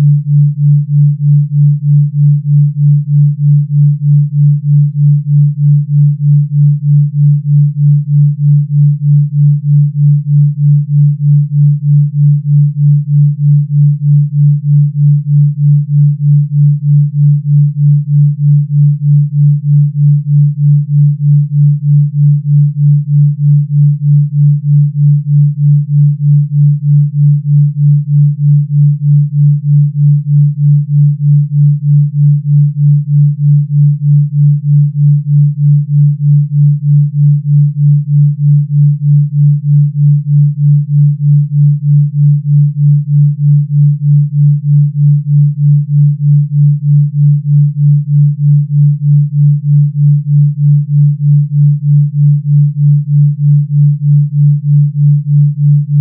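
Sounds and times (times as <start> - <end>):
pulsing low sine tone: 0.0 - 56.0.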